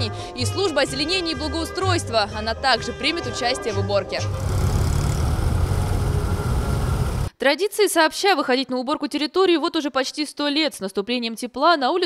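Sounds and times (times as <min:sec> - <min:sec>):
tractor diesel engines rumbling: 0:04.2 - 0:07.3.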